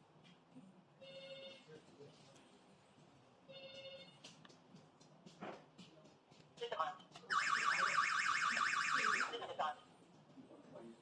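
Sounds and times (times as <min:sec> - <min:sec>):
alarm siren warbling: 0:07.3 - 0:09.3.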